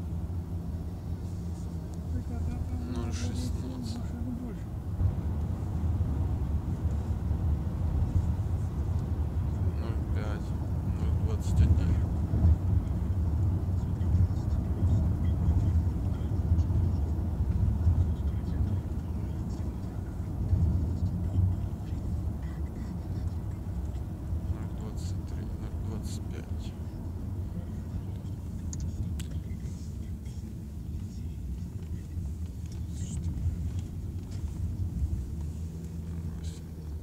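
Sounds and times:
car cabin road and engine rumble: 0:00.0 - 0:37.0.

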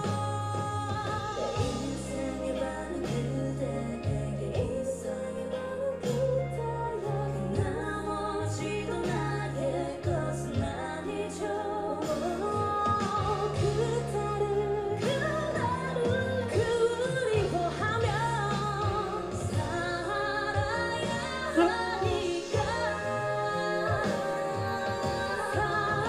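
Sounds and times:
female vocal group singing: 0:00.0 - 0:26.0.

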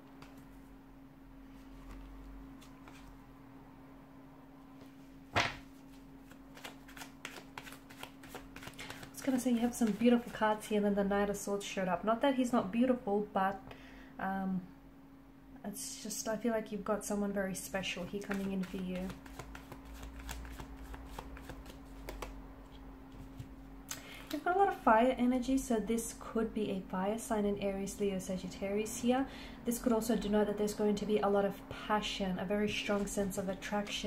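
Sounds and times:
faint steady hum: 0:00.0 - 0:34.0
cards being shuffled: 0:00.1 - 0:00.5, 0:01.6 - 0:03.2, 0:05.4 - 0:10.4, 0:18.0 - 0:23.5.

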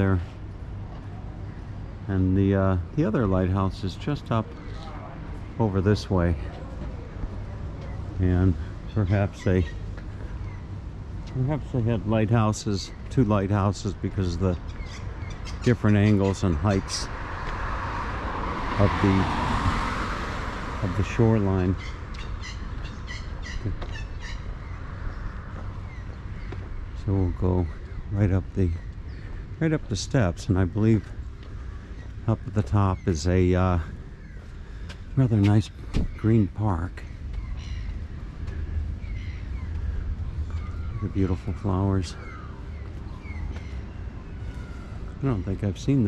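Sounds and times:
low outdoor noise: 0:00.0 - 0:46.0
bird calling: 0:03.3 - 0:17.2, 0:20.8 - 0:46.0.

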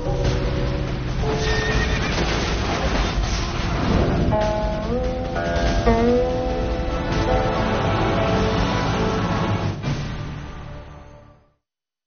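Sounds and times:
background music: 0:00.0 - 0:11.6.

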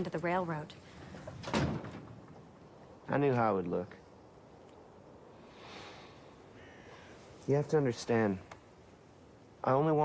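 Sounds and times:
soft outdoor hiss: 0:00.0 - 0:10.0
faint bird call: 0:05.5 - 0:07.3.

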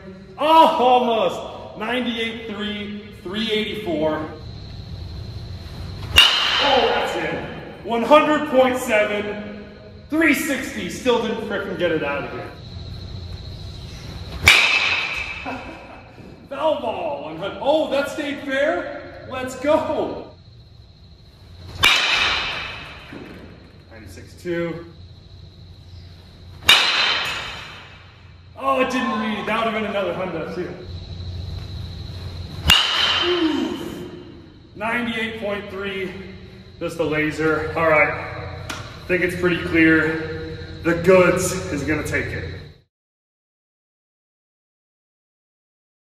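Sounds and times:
metal bat striking baseball: 0:06.0 - 0:07.2, 0:14.4 - 0:15.6, 0:21.7 - 0:23.6, 0:26.6 - 0:28.2, 0:32.6 - 0:34.2.

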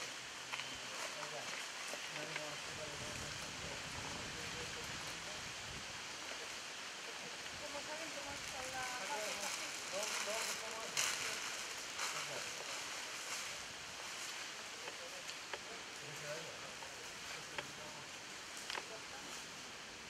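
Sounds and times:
distant people talking: 0:00.0 - 0:19.9
outdoor hiss: 0:00.0 - 0:20.0.

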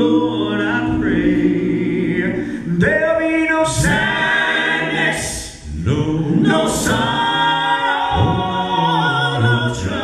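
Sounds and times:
male quartet singing a cappella: 0:00.0 - 0:10.0.

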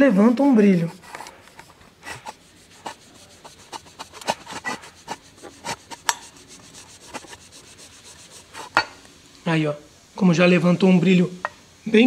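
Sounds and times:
cloth rubbing chrome: 0:00.0 - 0:09.0.

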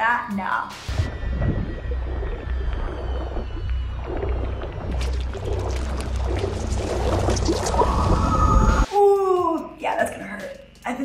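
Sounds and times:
film music: 0:00.7 - 0:11.0
bubbling water: 0:00.9 - 0:08.9
deep steady rumble: 0:00.9 - 0:08.9
woman screaming underwater: 0:07.6 - 0:09.4.

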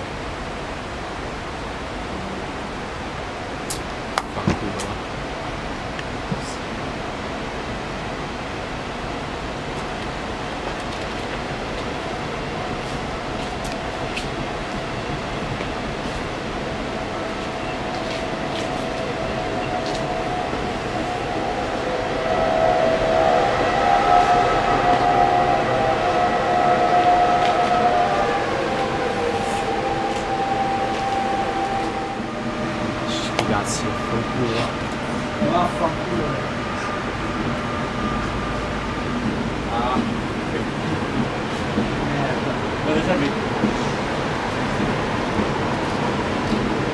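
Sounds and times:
train coaches rumbling past: 0:00.0 - 0:46.9
high wheel squeal: 0:17.6 - 0:39.2.

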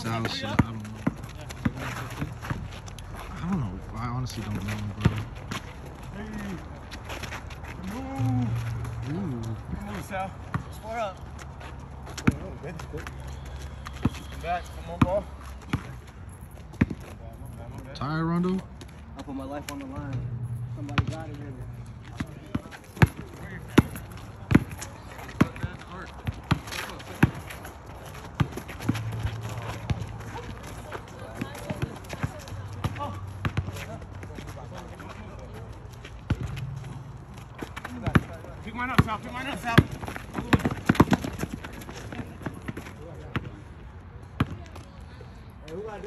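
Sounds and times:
basketball bouncing on asphalt: 0:00.0 - 0:03.4, 0:04.4 - 0:17.3, 0:18.4 - 0:45.0
players calling out: 0:07.6 - 0:11.2.

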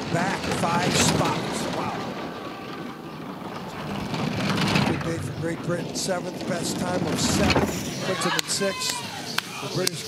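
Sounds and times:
bobsleigh runners rumbling on ice: 0:00.0 - 0:10.0.

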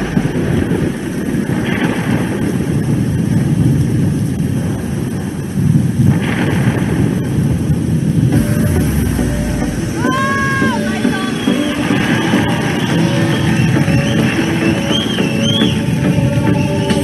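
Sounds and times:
rain and thunder rumbling: 0:00.0 - 0:17.0
held tone: 0:08.4 - 0:12.5.

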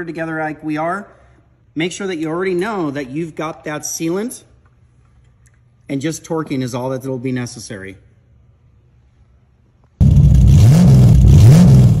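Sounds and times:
car engine revving: 0:10.0 - 0:12.0.

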